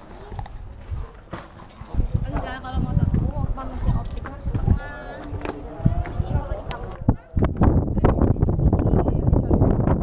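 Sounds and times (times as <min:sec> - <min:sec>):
wind buffeting microphone: 0:00.0 - 0:10.0
people's voices: 0:01.4 - 0:10.0.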